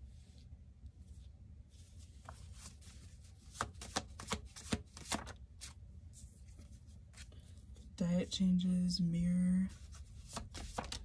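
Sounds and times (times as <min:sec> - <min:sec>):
cards being shuffled: 0:01.8 - 0:07.9, 0:09.7 - 0:11.0.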